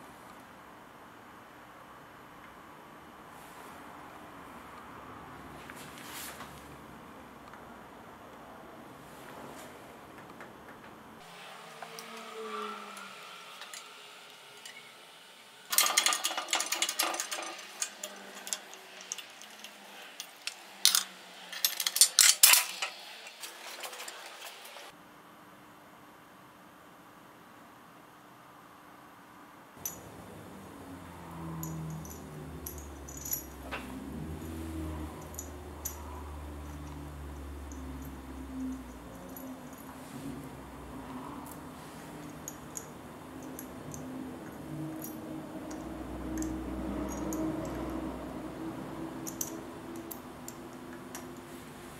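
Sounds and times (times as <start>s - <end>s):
metal parts and tools clinking: 15.7s - 24.9s, 29.8s - 51.6s.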